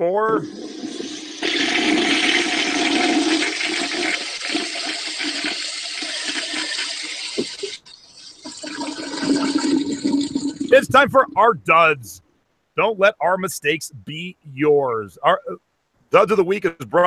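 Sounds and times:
toilet flushing: 0:00.3 - 0:10.8.

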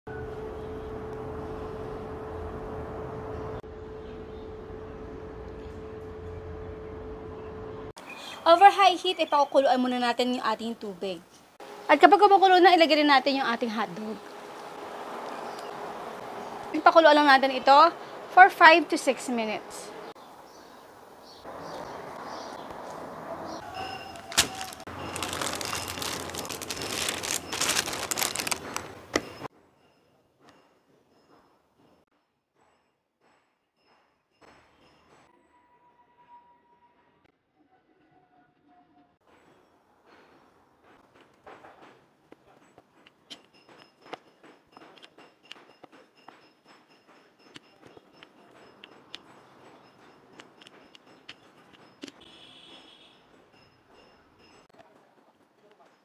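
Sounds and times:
plastic bag crinkling: 0:24.0 - 0:29.5.

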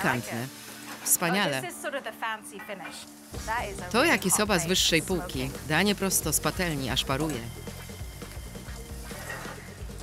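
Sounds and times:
noodles sizzling in a frying pan: 0:00.0 - 0:10.0
music with deep bass: 0:03.4 - 0:10.0.

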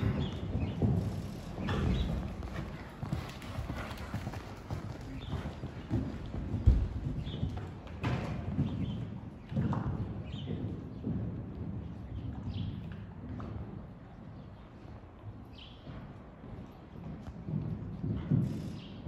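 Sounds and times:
heavy hoof thud: 0:00.0 - 0:11.6
horse hoofbeats on sand: 0:00.0 - 0:19.0.

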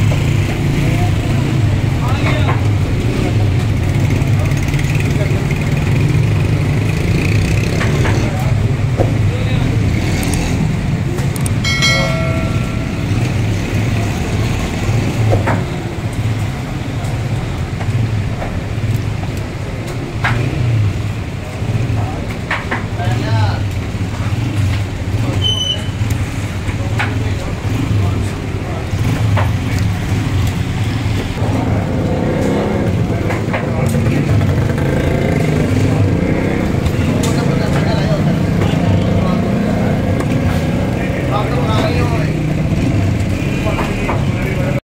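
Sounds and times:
road traffic rumble: 0:00.0 - 0:44.8.

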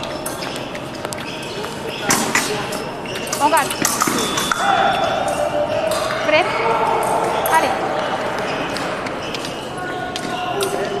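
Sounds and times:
indistinct voices in a hall: 0:00.0 - 0:11.0
sharp pings: 0:03.8 - 0:09.6.

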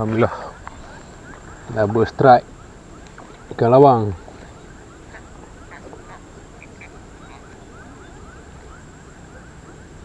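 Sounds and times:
small animals chirping: 0:00.0 - 0:09.7
thin high whine: 0:00.0 - 0:10.0.

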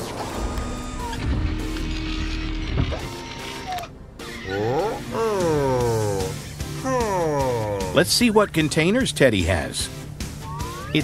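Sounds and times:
cartoon background music: 0:02.8 - 0:11.0.

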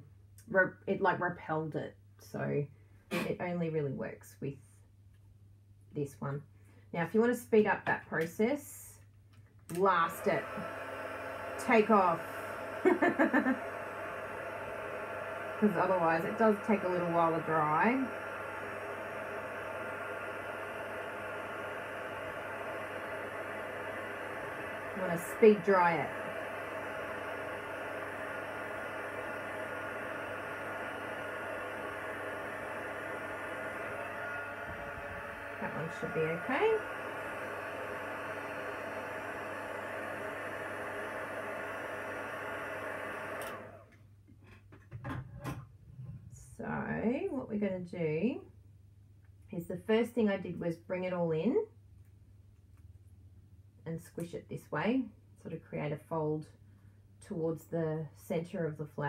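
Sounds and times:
heat tool blowing hot air: 0:09.7 - 0:43.9.

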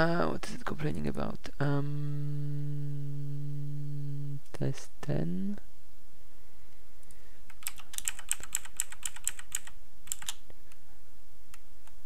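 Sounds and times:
computer keyboard typing: 0:07.5 - 0:10.4.

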